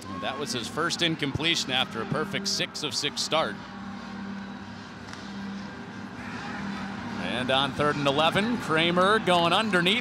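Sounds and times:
murmur of spectators: 0.0s - 10.0s.

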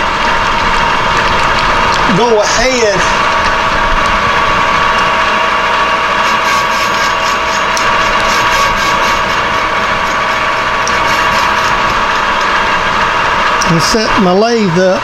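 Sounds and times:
metal lathe whining: 0.0s - 15.0s
cutting tool facing steel: 6.1s - 12.4s.

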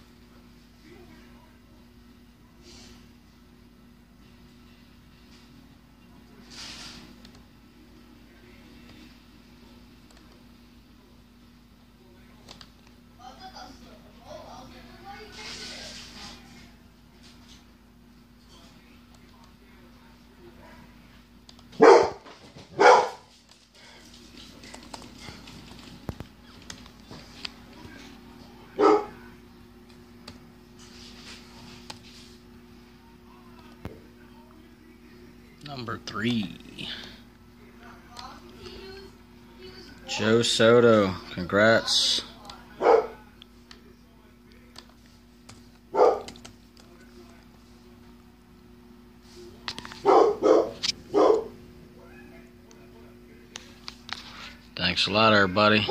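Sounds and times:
steady low hum: 0.0s - 55.9s
dog barking: 21.8s - 23.3s, 28.8s - 29.2s, 42.8s - 43.2s, 45.9s - 46.4s, 50.0s - 51.6s.

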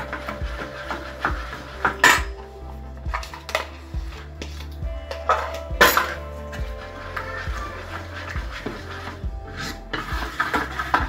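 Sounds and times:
metal utensils clinking: 0.0s - 11.0s.

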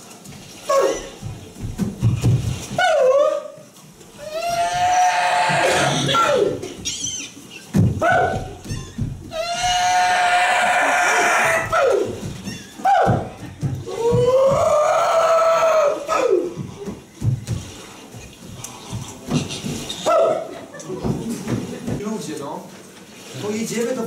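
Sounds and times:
wailing vocal cries: 4.2s - 7.4s, 8.0s - 16.6s.

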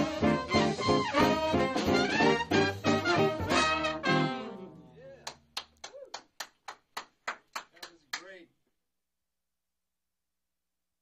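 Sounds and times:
swing band final chord: 0.0s - 4.9s
sparse hand clapping: 5.2s - 8.4s.

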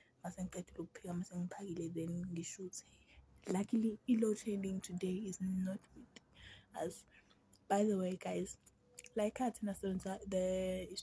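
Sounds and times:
woman talking: 0.2s - 7.1s, 7.7s - 11.0s.

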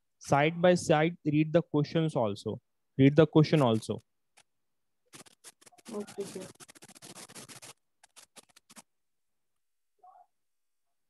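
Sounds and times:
scratching and rustling: 5.1s - 8.9s.

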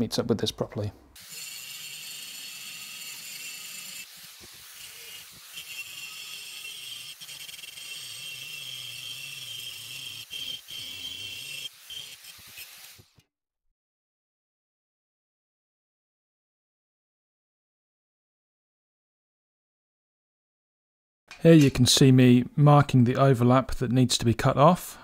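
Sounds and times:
angle grinder grinding steel: 1.2s - 13.2s.

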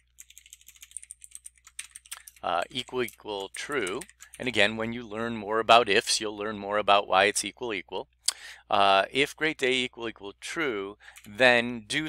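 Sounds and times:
typing on computer keyboard: 0.0s - 4.5s.

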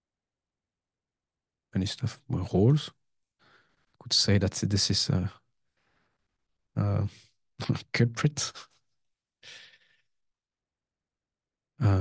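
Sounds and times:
man speaking: 1.8s - 3.0s, 4.0s - 5.4s, 6.8s - 8.7s.

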